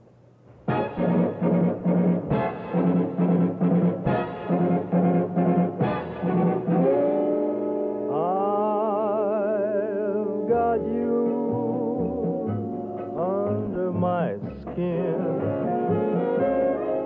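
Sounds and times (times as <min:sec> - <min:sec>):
brass section chords: 0:00.6 - 0:08.6, 0:10.3 - 0:17.0.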